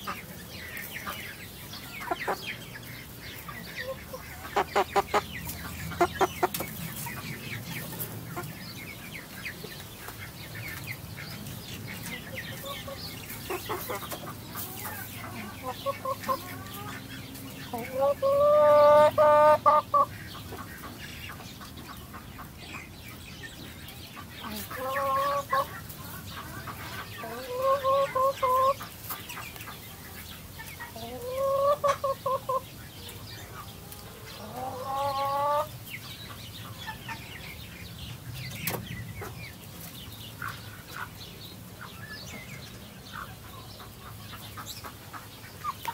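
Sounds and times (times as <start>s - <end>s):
chickens calling loudly: 0.0s - 45.9s
chickens clucking quietly: 0.0s - 45.9s.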